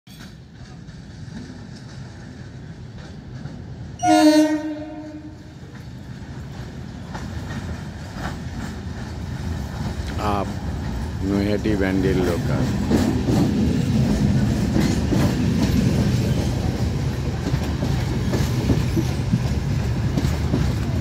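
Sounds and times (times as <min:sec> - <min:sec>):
train rumbling on rails: 0:00.1 - 0:21.0
train horn: 0:04.0 - 0:05.6.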